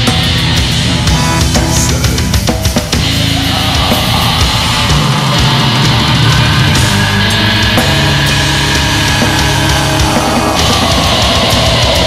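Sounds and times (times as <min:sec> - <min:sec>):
death metal band playing: 0:00.0 - 0:12.0.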